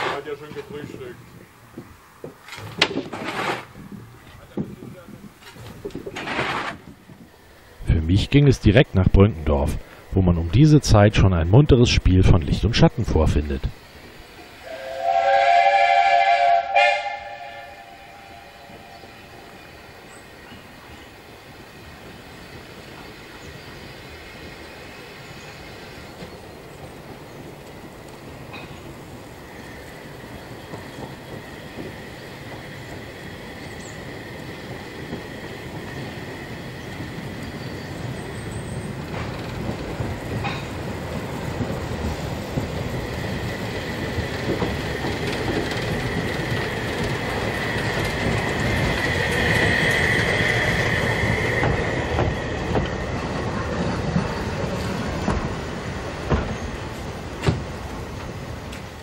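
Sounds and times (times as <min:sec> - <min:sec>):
steam train rolling: 0:00.0 - 0:59.0
high wheel squeal: 0:16.2 - 0:20.6.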